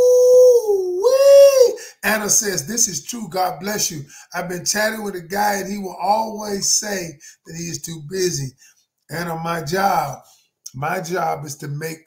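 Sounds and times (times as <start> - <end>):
man's high-pitched vocal howl: 0.0 - 2.3.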